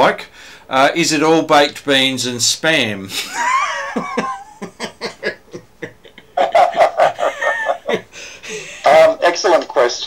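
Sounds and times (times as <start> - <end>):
man laughing: 3.1 - 9.0.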